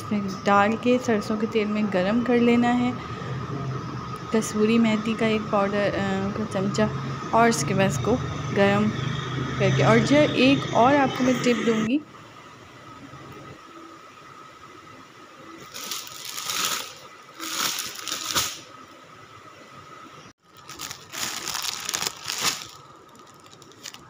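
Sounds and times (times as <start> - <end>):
plastic wrapping crinkling: 15.6 - 18.7, 20.4 - 24.0.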